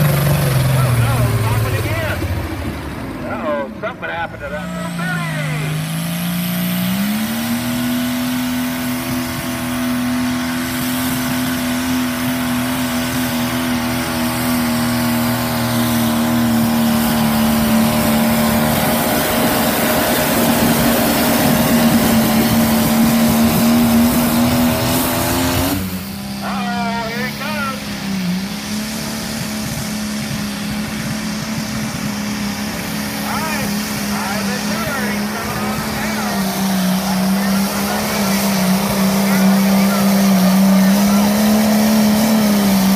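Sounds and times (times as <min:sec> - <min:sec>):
tractor engine at full throttle: 0:00.0 - 0:42.9
voices: 0:00.6 - 0:02.4, 0:03.2 - 0:05.8, 0:26.4 - 0:27.9, 0:33.2 - 0:41.7.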